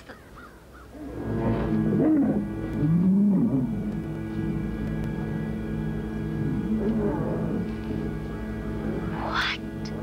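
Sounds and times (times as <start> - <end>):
eerie held music: 0.5 - 10.0
low creature calls: 8.8 - 9.7.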